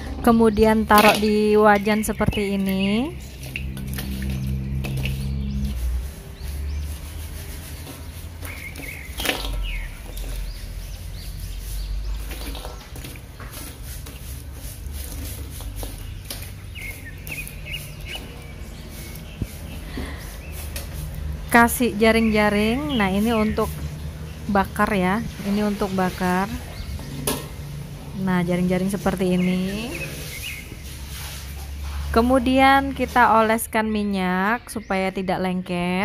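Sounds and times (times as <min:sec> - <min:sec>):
charcoal clattering in a wok: 0:12.0 - 0:21.5.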